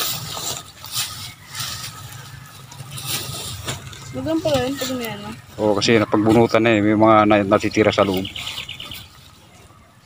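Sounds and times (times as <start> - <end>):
bird chirping: 1.1 - 10.0.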